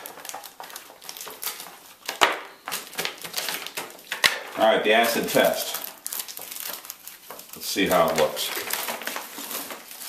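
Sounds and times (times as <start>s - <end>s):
packing tape being smoothed: 0.0s - 10.0s
plastic bag crinkling and rustling: 0.0s - 10.0s.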